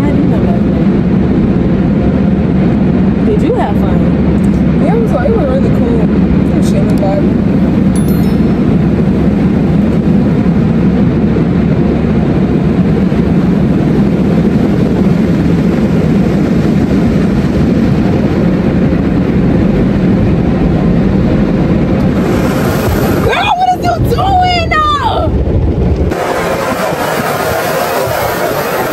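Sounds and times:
car wash machinery rumbling: 8.7 - 28.9.

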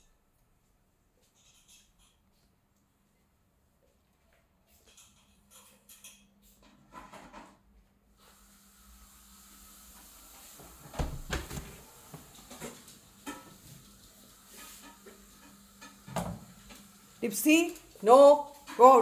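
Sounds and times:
faint steady hiss: 7.8 - 19.0.

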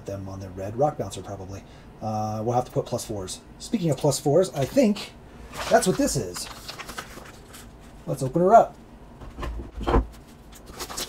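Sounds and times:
paper mailer rustling: 4.6 - 8.0, 10.1 - 11.0.

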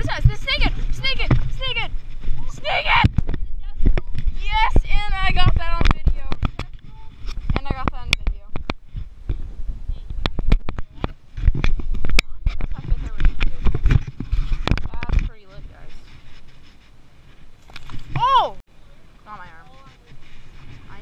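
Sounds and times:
excited voices: 0.0 - 6.1, 18.2 - 18.6.

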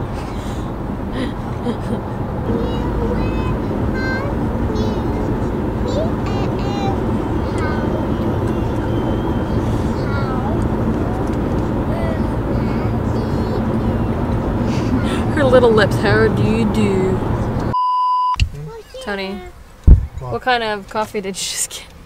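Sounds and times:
car road and engine rumble: 0.0 - 17.8, 18.4 - 22.0
small child chattering: 2.5 - 8.1, 9.6 - 11.3, 11.9 - 14.1, 18.6 - 19.6.

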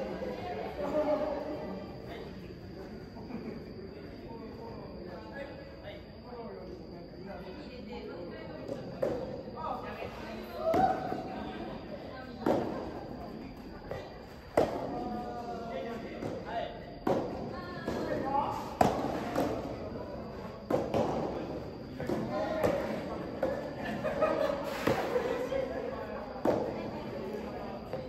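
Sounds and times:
rackets hitting ball with echo: 10.6 - 11.3, 12.4 - 15.2, 15.9 - 23.8, 26.4 - 27.0.

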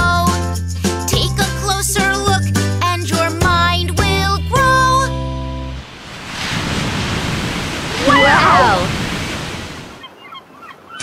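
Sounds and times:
water splash and surf: 5.8 - 11.0.

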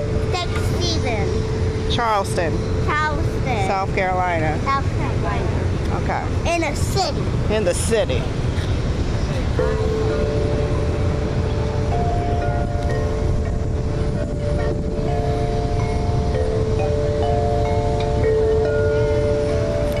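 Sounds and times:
wind buffeting microphone: 0.0 - 20.0
long chime-like tones: 9.6 - 20.0.

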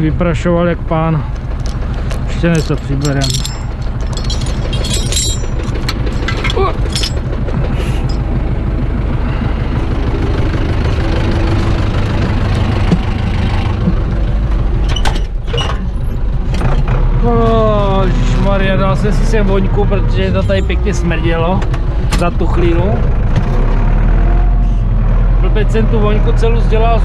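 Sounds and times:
tractor diesel engine idling: 0.0 - 15.0, 15.8 - 27.0.

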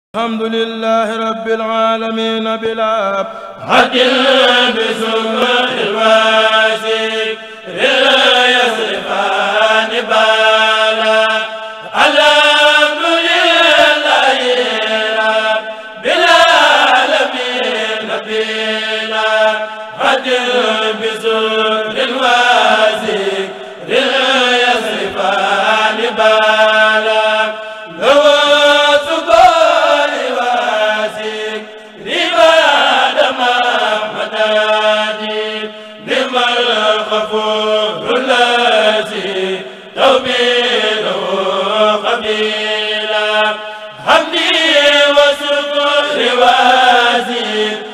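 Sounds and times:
men's choir chanting: 1.0 - 47.9.

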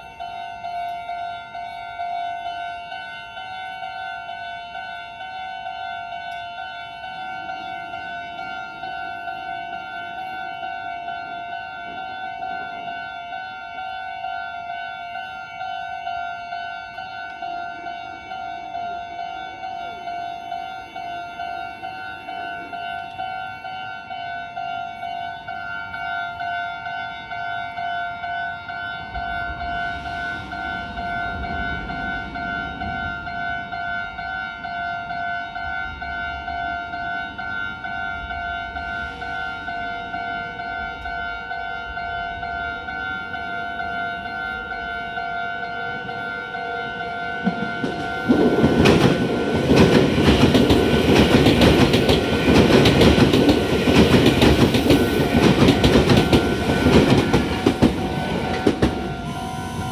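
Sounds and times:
electric train passing: 0.0 - 59.9
level-crossing alarm dinging: 0.0 - 59.9
train wheels clacking: 47.0 - 59.9.

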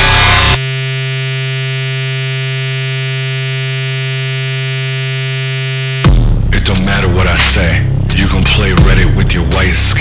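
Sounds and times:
low electronic buzzing drone: 0.0 - 10.0.

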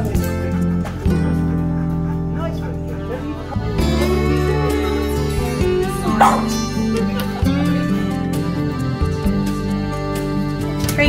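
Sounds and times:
background music: 0.0 - 11.0
dog bark: 6.1 - 6.6.

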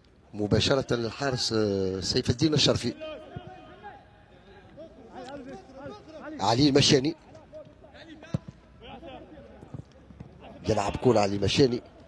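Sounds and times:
faint voices of players and crowd: 0.0 - 12.0.

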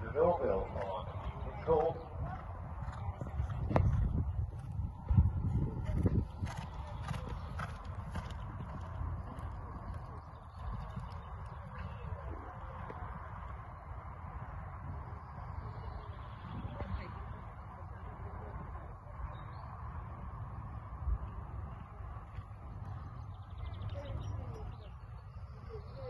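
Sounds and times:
hoofbeats thudding on sand: 1.2 - 13.1.

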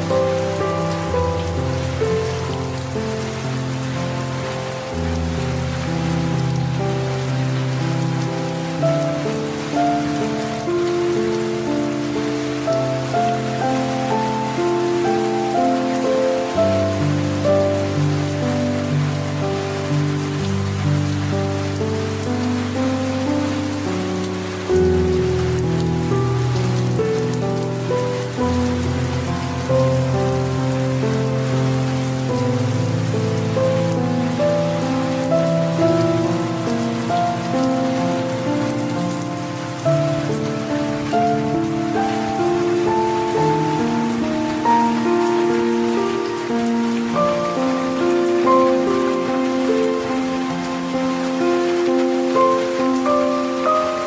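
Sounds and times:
slow soft instrumental music: 0.0 - 54.0
steady rain falling: 0.0 - 54.0.

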